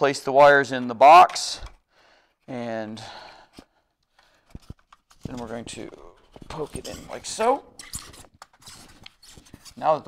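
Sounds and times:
cable handling noise: 3.5 - 10.0.

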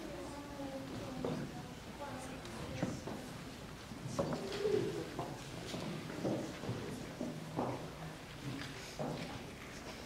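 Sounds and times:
faint audience voices: 0.0 - 10.0.

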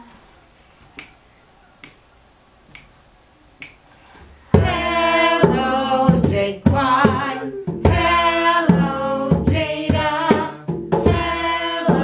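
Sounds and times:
finger snaps: 0.9 - 1.2, 1.8 - 2.0, 2.7 - 3.0, 3.6 - 3.8
person singing: 4.5 - 12.0.

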